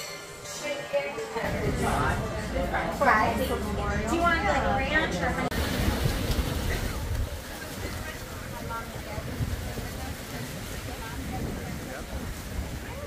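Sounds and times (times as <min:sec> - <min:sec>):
distant people talking: 0:00.0 - 0:13.0
wind buffeting microphone: 0:03.7 - 0:13.0.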